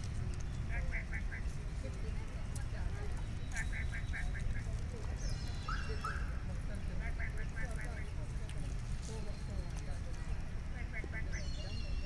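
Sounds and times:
birds calling: 0.0s - 8.3s, 10.6s - 12.0s.

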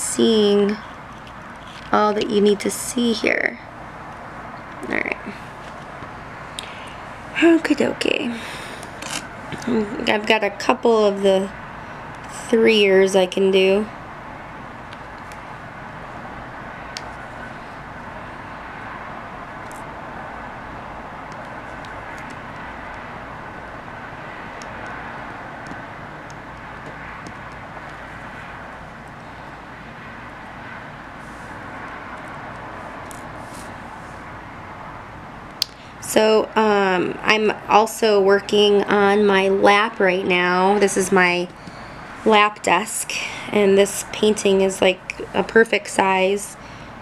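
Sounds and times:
steady rushing noise: 0.0s - 47.0s.

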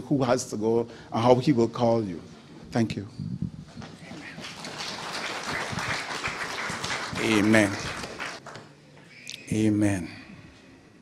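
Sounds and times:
congregation applauding: 4.1s - 8.7s.

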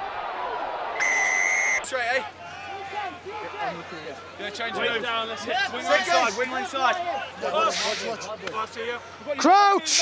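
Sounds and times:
crowd noise: 0.0s - 10.0s
referee's whistle blast: 1.0s - 1.8s.

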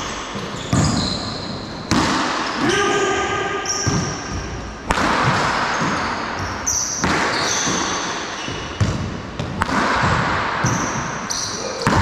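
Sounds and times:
ball hits echoing in a court: 0.0s - 12.0s
sneakers squeaking on floor: 0.0s - 12.0s
sharp crack: 4.8s - 5.7s, 9.6s - 10.6s.

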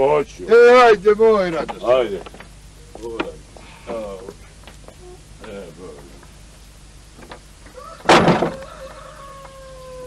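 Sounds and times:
rooster crowing: 7.6s - 10.0s
wooden door slamming: 8.0s - 8.6s.

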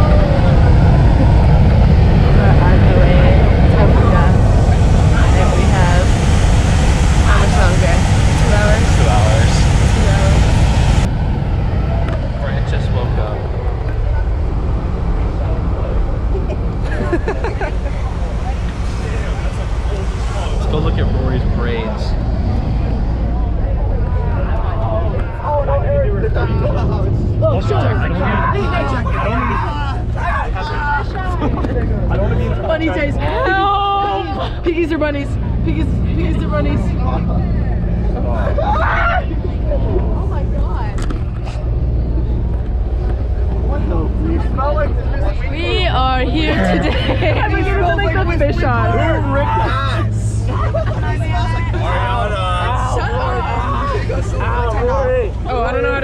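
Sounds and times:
bus engine and road rumble: 0.0s - 56.0s
passenger chatter: 0.0s - 56.0s.

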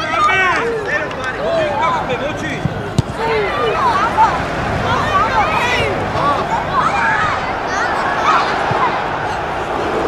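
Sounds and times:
football being kicked: 2.6s - 3.2s
children shouting: 3.1s - 10.0s.

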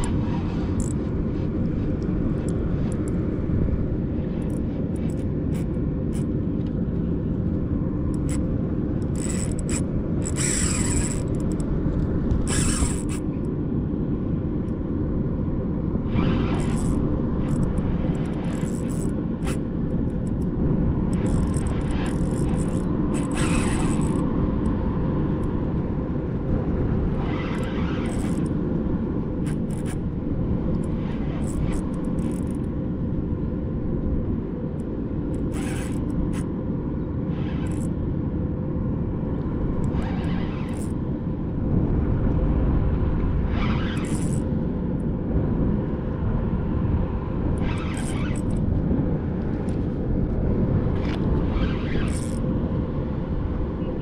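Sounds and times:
faint hum: 0.0s - 54.0s.

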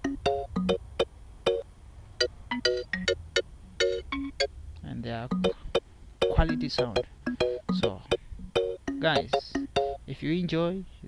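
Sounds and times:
kalimba melody: 0.0s - 1.6s, 2.5s - 4.5s, 5.3s - 10.1s.

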